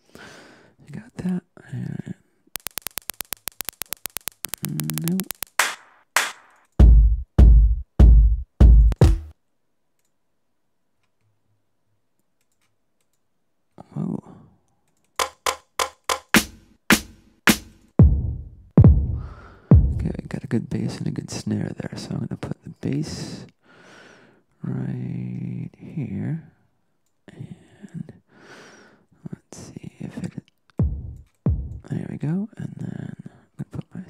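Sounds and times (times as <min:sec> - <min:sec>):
rapid drum clicks: 0:02.6 - 0:07.5, 0:08.6 - 0:09.3, 0:15.2 - 0:18.2, 0:30.8 - 0:31.8
sharp snare hits: 0:05.4 - 0:07.0, 0:15.2 - 0:18.1
heavy bass drum hits: 0:06.8 - 0:09.3, 0:16.4 - 0:20.1, 0:30.8 - 0:31.8.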